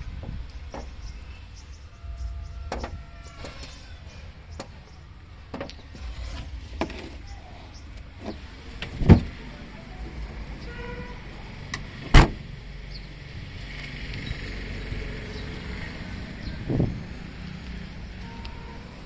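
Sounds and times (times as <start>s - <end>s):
low steady rumble: 0.0s - 19.0s
car boot lid slammed shut: 12.1s - 12.4s.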